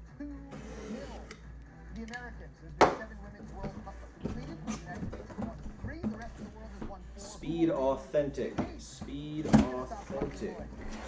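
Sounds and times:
box cutter scraping tape: 0.6s - 1.4s.

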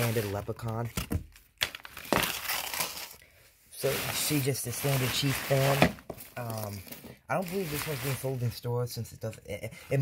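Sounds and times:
cardboard box scraping: 3.8s - 6.3s.

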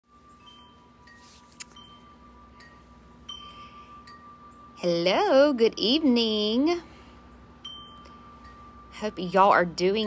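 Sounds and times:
wind chimes ringing: 0.1s - 10.0s.

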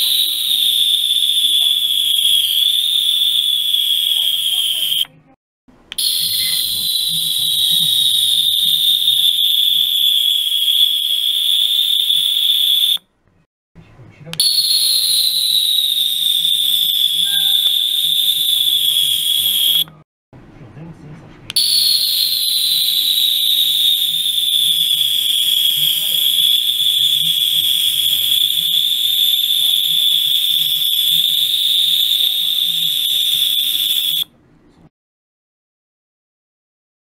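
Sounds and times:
high-pitched ultrasonic cleaner whistle: 0.0s - 5.2s, 5.9s - 13.1s, 14.4s - 20.0s, 21.6s - 34.3s.

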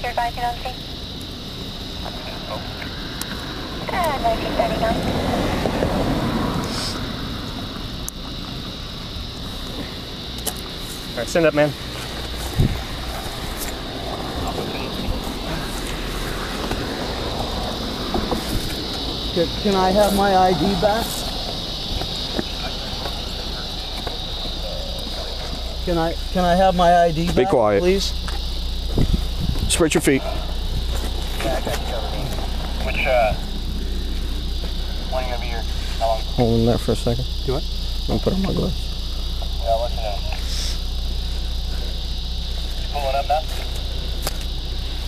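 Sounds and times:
crickets chirping: 0.0s - 45.0s
microphone handling noise: 12.1s - 13.7s, 28.9s - 29.7s.

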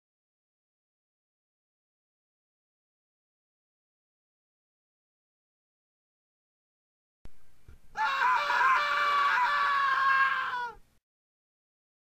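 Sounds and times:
person screaming high-pitched: 8.0s - 10.8s.

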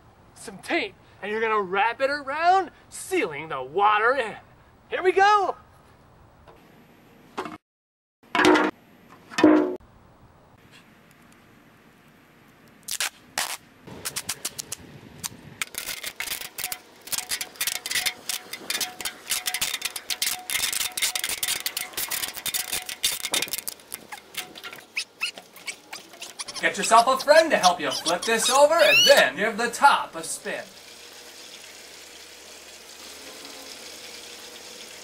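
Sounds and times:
packaging tape ripping off roll: 12.8s - 24.2s.

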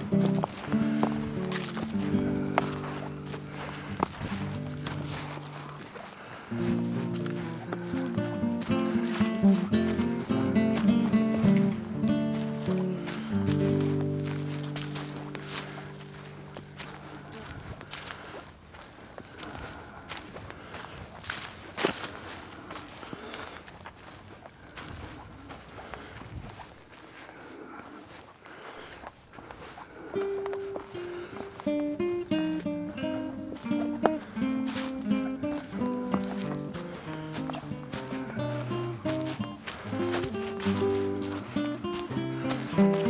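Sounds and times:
background music tune: 0.0s - 5.8s, 6.5s - 17.4s, 30.2s - 43.0s
held background music chord: 0.0s - 5.8s, 6.5s - 17.4s, 30.2s - 43.0s
footsteps crunching dry leaves: 0.0s - 43.0s.

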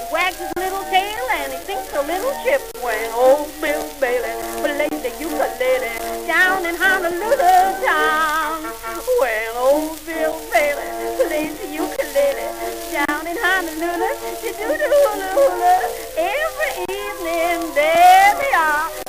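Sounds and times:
old vaudeville song with orchestra: 0.0s - 19.0s
record surface crackle: 0.0s - 19.0s.

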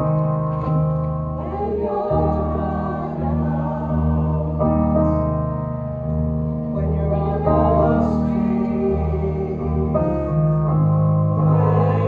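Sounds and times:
piano accompaniment: 0.0s - 12.0s
choir singing held notes: 1.4s - 5.3s, 6.8s - 10.6s, 11.3s - 12.0s.

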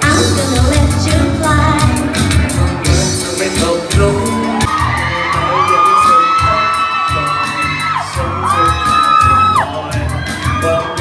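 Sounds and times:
pop music with steady beat: 0.0s - 11.0s
audience screaming: 4.1s - 11.0s.

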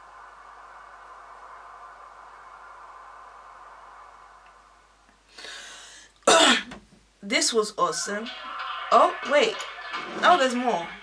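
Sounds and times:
breathy sound: 5.2s - 6.2s
woman coughing: 6.3s - 6.8s.

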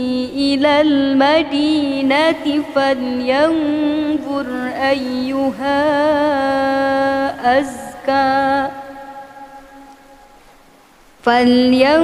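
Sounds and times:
person reciting melodically: 0.0s - 9.2s, 11.2s - 12.0s
faint hiss: 0.0s - 12.0s.

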